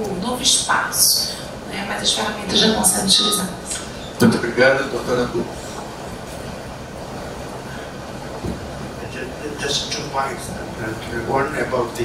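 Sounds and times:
room noise with low hum: 0:00.0 - 0:12.0.

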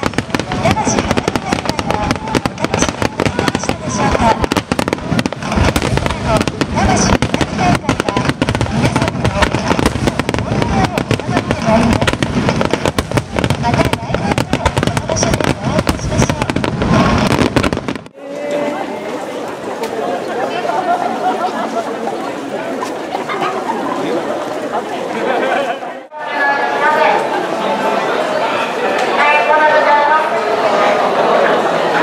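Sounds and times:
fireworks bangs and crackles: 0:00.0 - 0:18.2.

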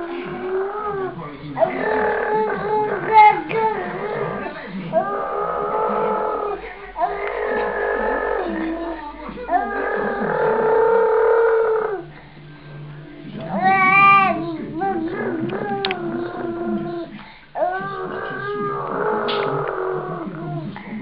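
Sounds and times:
toddler babbling sing-song: 0:13.4 - 0:18.7.

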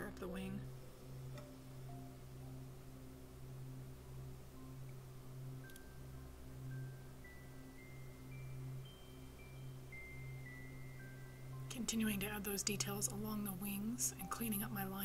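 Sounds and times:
bell-like melody notes: 0:00.6 - 0:15.0.

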